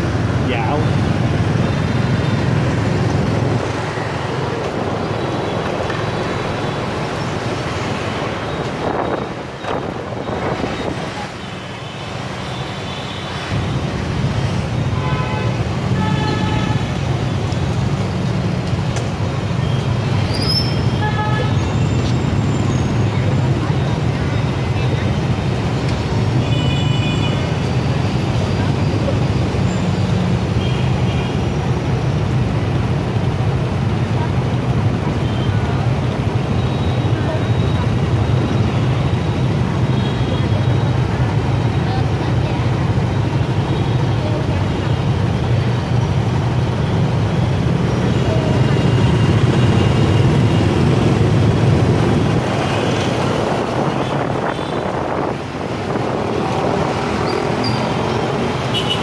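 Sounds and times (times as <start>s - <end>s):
motorbike and scooter engines: 0.0s - 59.0s.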